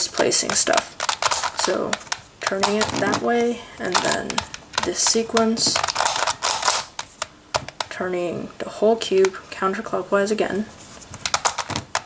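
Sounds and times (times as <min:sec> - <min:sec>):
plastic puzzle clicking turns: 0:00.0 - 0:07.9, 0:11.1 - 0:12.0.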